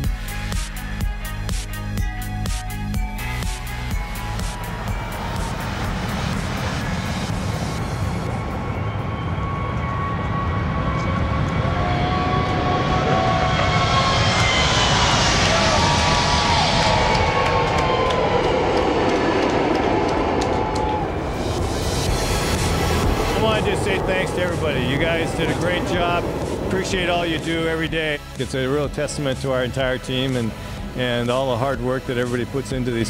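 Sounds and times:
jet engines at takeoff: 0.0 - 33.0
quiet music: 21.6 - 33.0.

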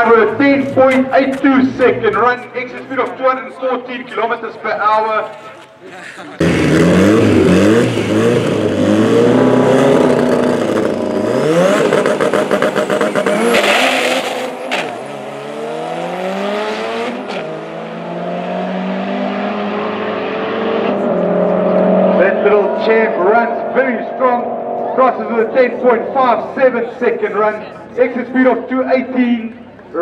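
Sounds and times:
racing car engines accelerating: 6.4 - 29.2.

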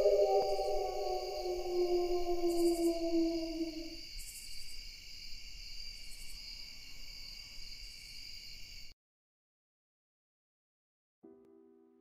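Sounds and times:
wolf howling: 0.0 - 4.0
crickets chirring: 0.0 - 8.9.

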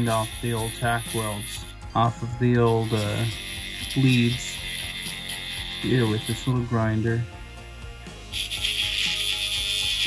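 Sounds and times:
rotary grinder grinding metal: 0.0 - 10.0.

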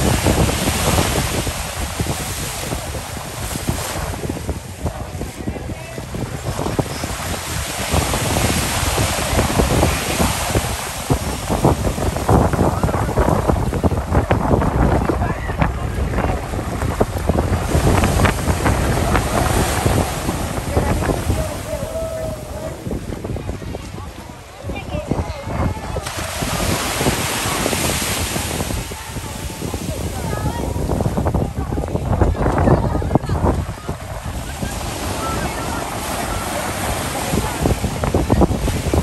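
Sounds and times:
ocean surf breaking: 0.0 - 39.0
wind buffeting microphone: 0.0 - 39.0.

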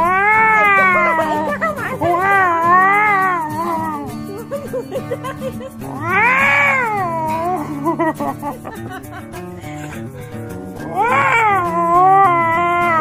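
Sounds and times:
cat meowing in long yowls: 0.0 - 4.0, 5.9 - 7.6, 10.8 - 13.0
background music with low notes: 0.0 - 13.0.

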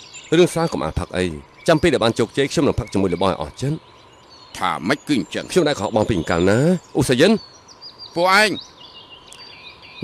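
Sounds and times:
faint bird chirps and whistles: 0.0 - 10.0
man speaking: 0.3 - 3.8, 4.6 - 7.4, 8.2 - 8.6.

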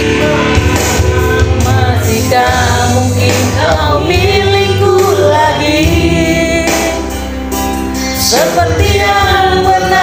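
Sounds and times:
person singing into microphone: 0.0 - 7.3, 8.1 - 10.0
backing music track: 0.0 - 10.0.

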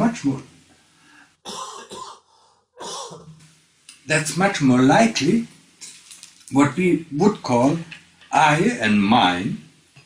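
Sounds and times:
man coughing: 1.5 - 2.2, 2.8 - 3.3.

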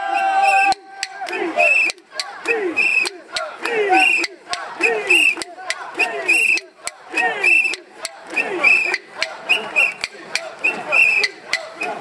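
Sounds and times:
people chanting in unison: 0.0 - 12.0.

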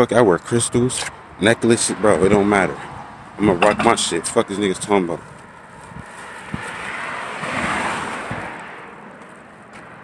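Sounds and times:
vehicle passing by: 1.9 - 10.0.

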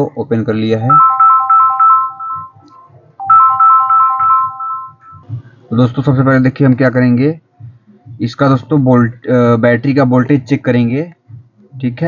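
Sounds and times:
electronic beeping ringtone melody: 0.9 - 5.3
soft low beat: 0.9 - 5.6, 7.6 - 8.3, 11.2 - 12.0.

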